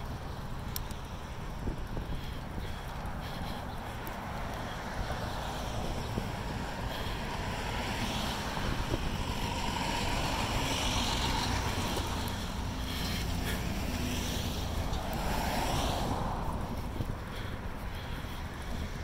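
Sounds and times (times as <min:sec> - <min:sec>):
bicycle rolling noise: 0:00.0 - 0:19.0
wind rushing over microphone: 0:00.0 - 0:19.0.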